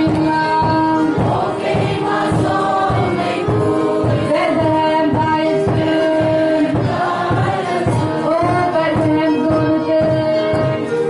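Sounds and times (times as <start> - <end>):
regular low beat: 0.0 - 9.2
congregation singing a hymn: 0.0 - 11.0.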